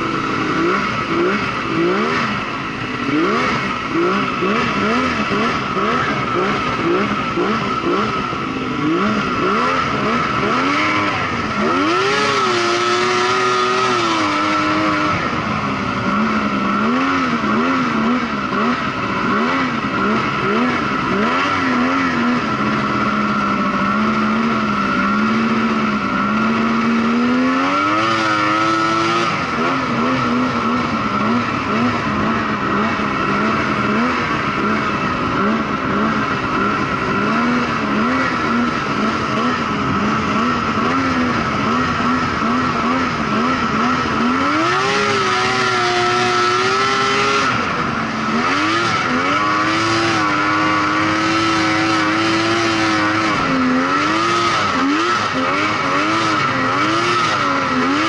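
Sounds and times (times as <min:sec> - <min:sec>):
snowmobile engine revving: 0:00.0 - 0:58.0.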